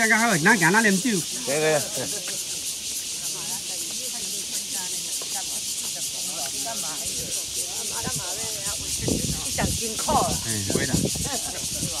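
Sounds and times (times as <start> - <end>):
people chatting: 0.0 - 2.6, 3.2 - 12.0
high-pitched hiss: 0.0 - 12.0.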